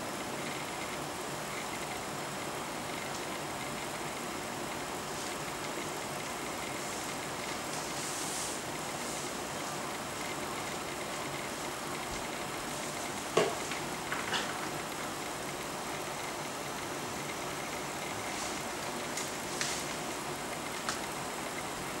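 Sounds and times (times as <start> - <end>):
room noise hiss: 0.0 - 22.0.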